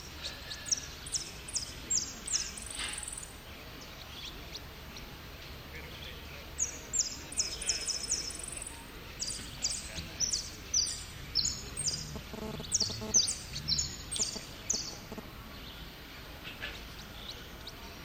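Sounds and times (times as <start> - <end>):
finch singing rapid high notes: 6.5 - 15.2.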